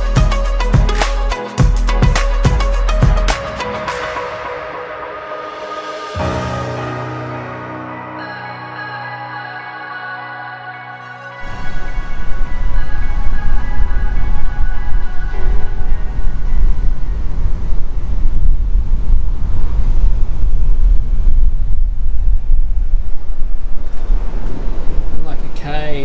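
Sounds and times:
soft ambient music: 0:00.0 - 0:26.0
wind buffeting microphone: 0:11.4 - 0:26.0.

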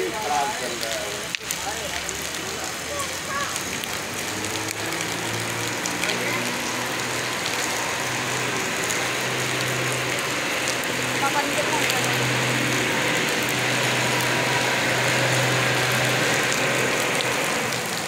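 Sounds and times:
heavy rain splashing on puddles: 0:00.0 - 0:18.0.

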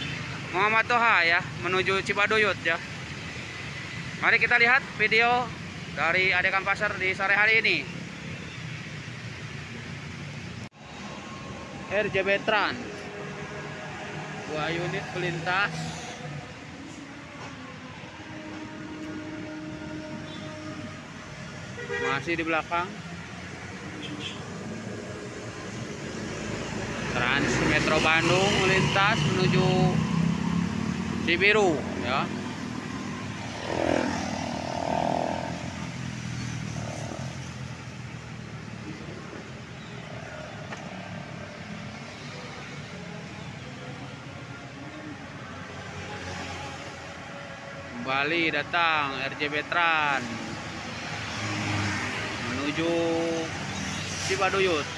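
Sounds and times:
road traffic passing: 0:00.0 - 0:54.9.

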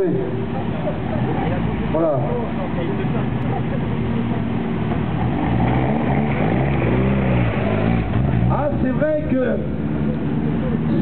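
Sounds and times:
rally car engines revving: 0:00.0 - 0:11.0.

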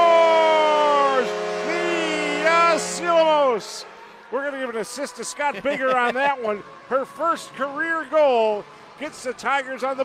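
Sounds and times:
arena goal horn: 0:00.0 - 0:04.2.

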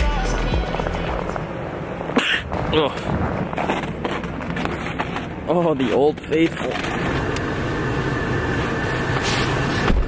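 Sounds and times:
wind buffeting microphone: 0:00.6 - 0:04.6.

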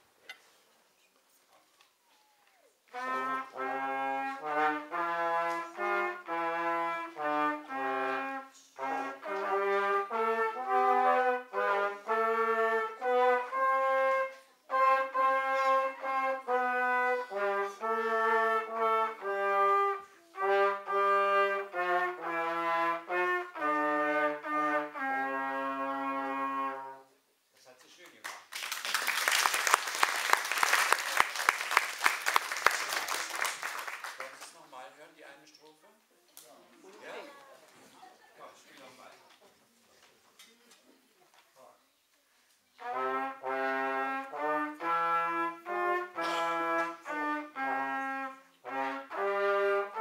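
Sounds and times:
brass ensemble playing: 0:02.9 - 0:27.2, 0:42.8 - 0:50.0.

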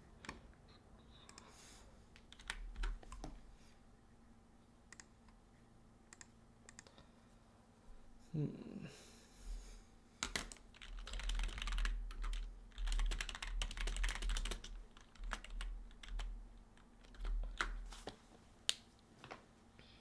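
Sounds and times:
typing on computer keyboard: 0:02.2 - 0:03.3, 0:10.2 - 0:17.8.

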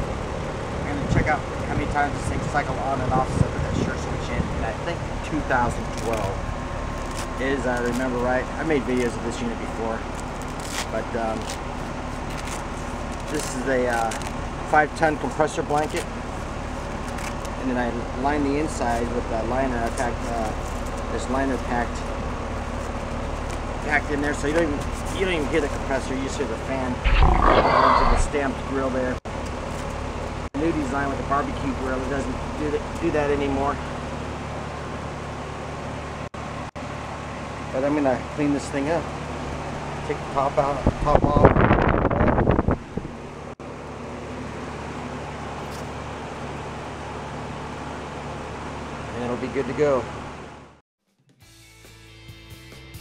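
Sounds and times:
condenser fan rushing: 0:00.0 - 0:50.8.

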